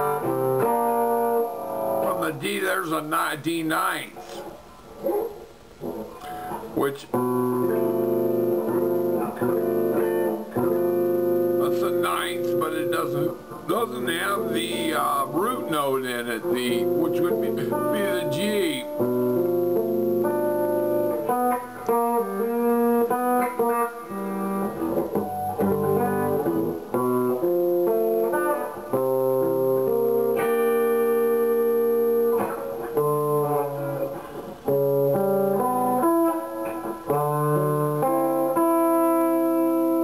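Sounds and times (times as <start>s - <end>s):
electric guitar chords ringing: 0.0s - 4.1s, 5.0s - 40.0s.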